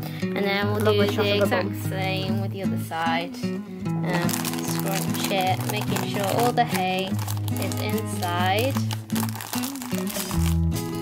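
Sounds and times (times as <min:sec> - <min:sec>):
background music: 0:00.0 - 0:11.0
cellophane wrap crinkling: 0:04.1 - 0:11.0.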